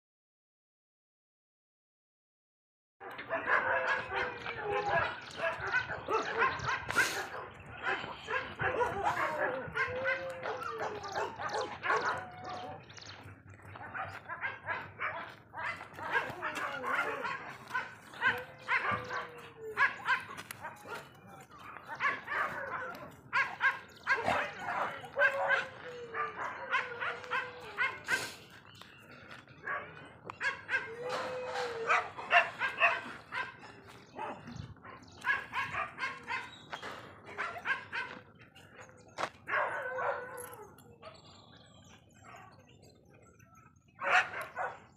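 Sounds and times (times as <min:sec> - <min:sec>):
dogs barking and yipping: 0:03.0 - 0:44.9.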